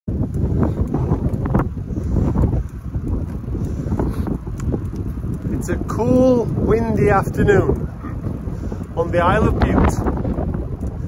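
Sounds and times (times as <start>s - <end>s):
wind buffeting microphone: 0.1s - 11.0s.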